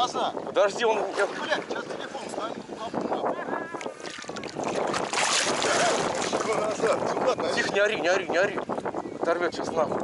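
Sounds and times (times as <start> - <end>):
choppy water lapping: 0.0 - 9.0
gusty wind on microphone: 0.0 - 10.0.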